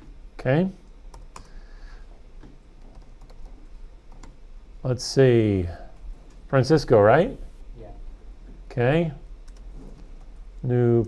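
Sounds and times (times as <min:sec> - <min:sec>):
computer keyboard typing: 0:01.1 - 0:01.6, 0:02.8 - 0:04.4, 0:09.4 - 0:10.4.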